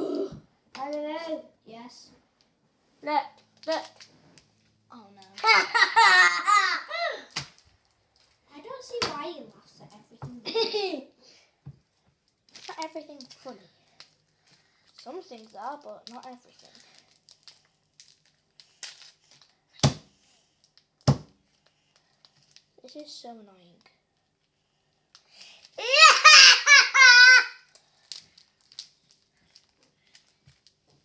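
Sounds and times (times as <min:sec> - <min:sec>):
small boy laughing shrilly: 0:05.4 - 0:07.3, 0:25.8 - 0:27.6.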